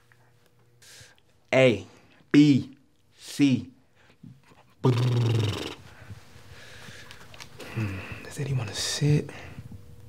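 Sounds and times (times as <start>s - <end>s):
breath: 0.8s - 1.2s, 5.9s - 8.3s
man's growling drawn-out word: 4.8s - 5.8s.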